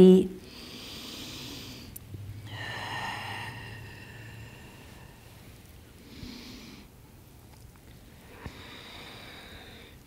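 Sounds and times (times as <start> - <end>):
person breathing through nose: 8.3 - 10.0.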